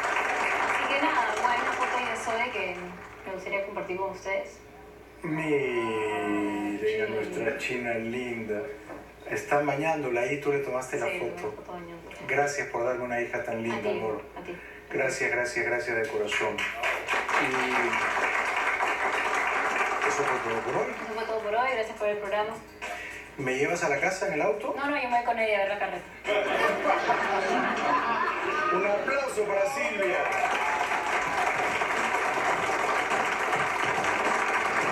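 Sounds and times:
audience applauding: 0.0 - 3.8, 16.2 - 21.9, 26.3 - 34.9.

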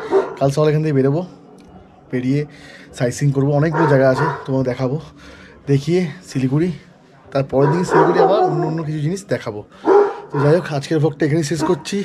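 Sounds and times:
man speaking: 0.0 - 1.4, 2.1 - 12.0.

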